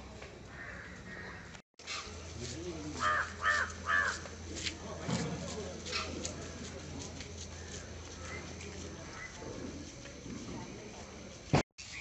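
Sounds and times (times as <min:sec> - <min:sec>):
crow cawing: 0:00.5 - 0:01.5, 0:03.0 - 0:04.2.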